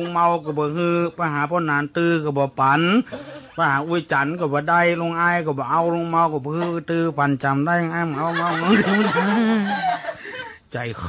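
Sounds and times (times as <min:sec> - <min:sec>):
man preaching: 0:00.0 - 0:09.5, 0:10.7 - 0:11.0.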